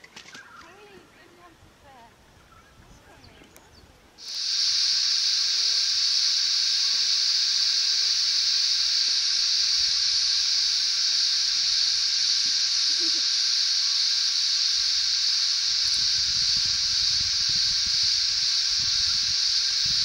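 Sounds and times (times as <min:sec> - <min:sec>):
steady high hiss: 0:04.0 - 0:20.0.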